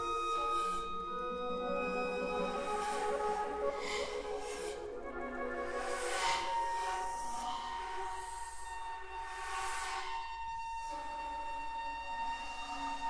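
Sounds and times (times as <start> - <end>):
flute ensemble sustained notes: 0.0 - 13.0.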